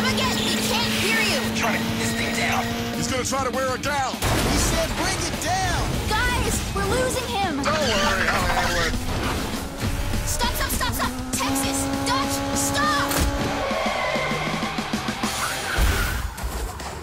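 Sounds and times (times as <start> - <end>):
vehicle sound effects: 0.0 - 17.0.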